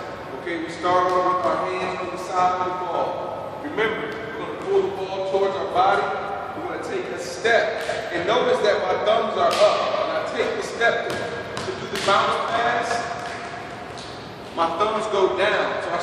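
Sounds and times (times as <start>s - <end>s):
basketball bouncing on gym floor: 1.0s - 2.6s, 11.0s - 13.8s.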